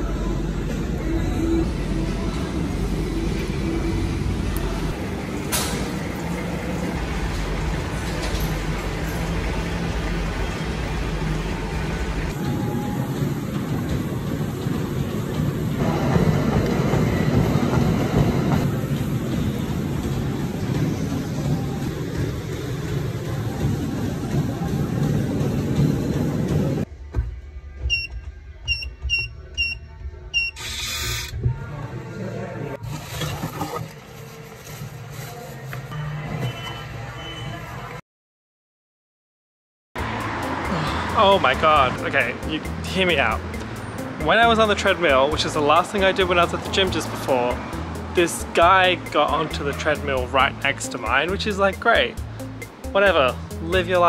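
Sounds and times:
street traffic rumble: 0:00.0 - 0:26.9, 0:40.0 - 0:54.0.

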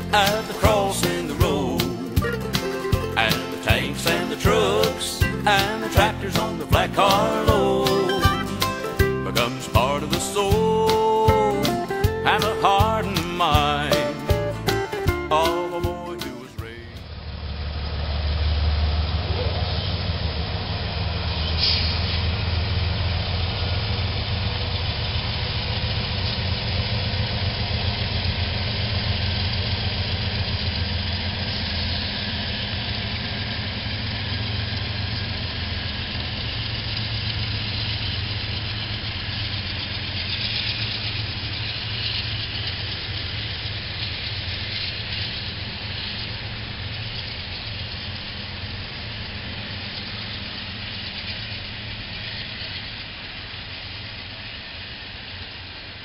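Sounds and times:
diesel locomotive engine drone: 0:00.0 - 0:56.0
freight cars rumbling and rattling: 0:00.0 - 0:56.0.

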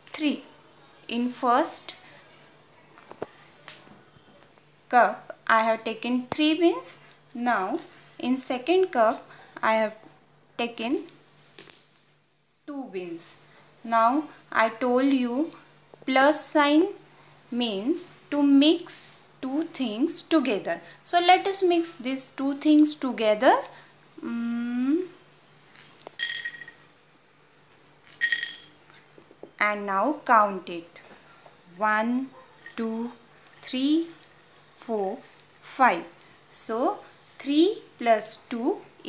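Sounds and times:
dried beans clinking onto a plate: 0:25.6 - 0:26.9, 0:27.7 - 0:28.9.

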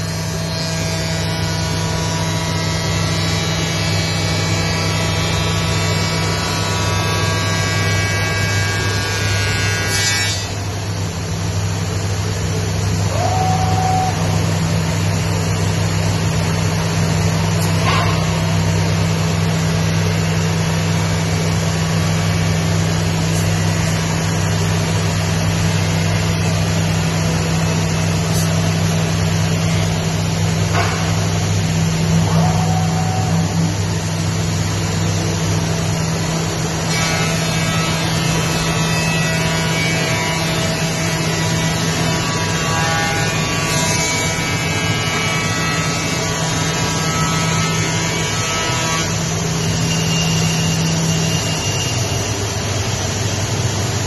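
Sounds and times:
machine low hum: 0:00.0 - 0:54.0
short tone: 0:49.9 - 0:52.2.

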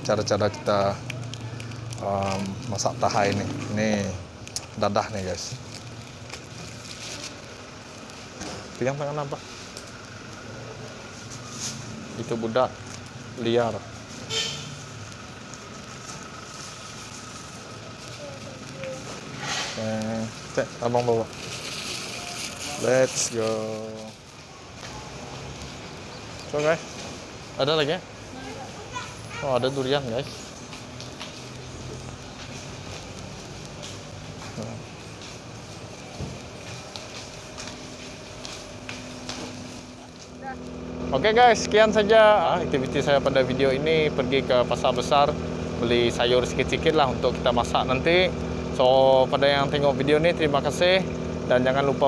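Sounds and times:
street traffic hum: 0:00.0 - 0:52.0
footsteps on tiled floor: 0:32.2 - 0:40.3.

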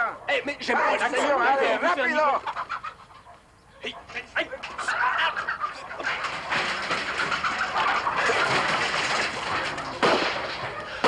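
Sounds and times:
chickens squawking and clucking: 0:00.0 - 0:11.0.

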